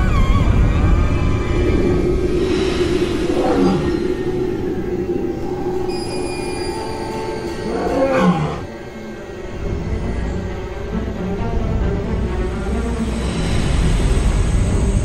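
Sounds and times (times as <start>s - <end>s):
background music drone: 0.0s - 15.0s
lion roaring: 1.4s - 5.9s, 7.0s - 8.7s.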